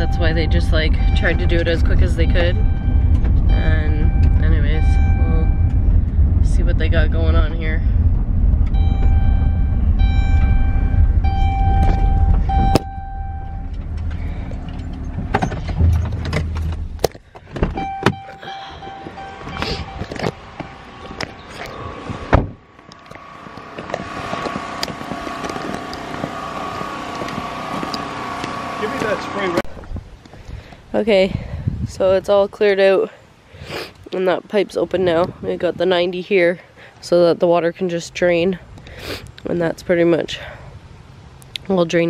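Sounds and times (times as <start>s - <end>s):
ringing tones: 0.0s - 6.8s, 8.6s - 15.1s, 17.8s - 29.4s
van engine and road rumble: 0.0s - 42.0s.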